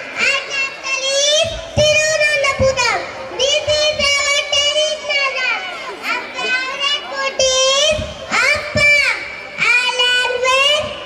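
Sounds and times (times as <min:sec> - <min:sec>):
children singing into a microphone: 0:00.0 - 0:11.0.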